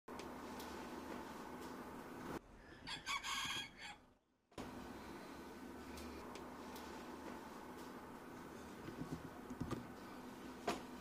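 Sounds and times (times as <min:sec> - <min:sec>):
rooster crowing: 0:02.8 - 0:04.1.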